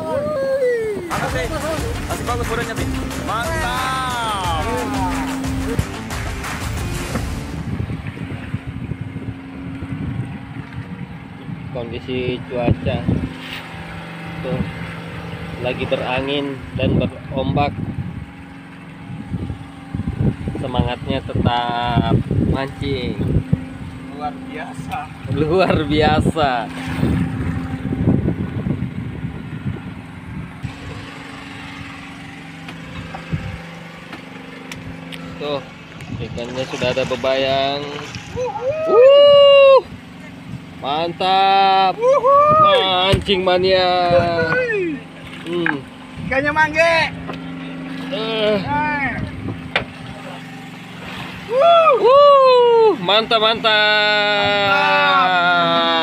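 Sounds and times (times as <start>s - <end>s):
wind buffeting microphone: 0.0s - 41.4s, 42.1s - 52.9s
boat engine idling: 0.0s - 56.0s
faint motor hum: 0.0s - 56.0s
background music: 1.1s - 7.9s.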